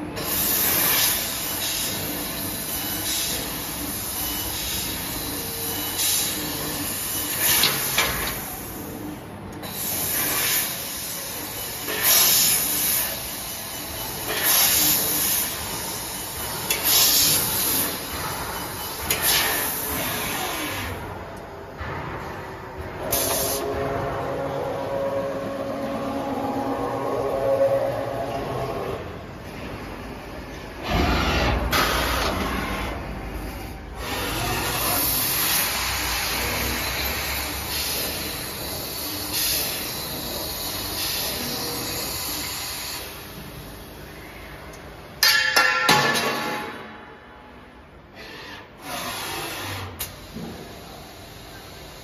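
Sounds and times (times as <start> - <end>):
laser cutting machine hissing: 0.2 - 21.2, 23.0 - 29.4, 30.8 - 44.5, 48.2 - 52.0
compressed air hiss: 23.1 - 23.6.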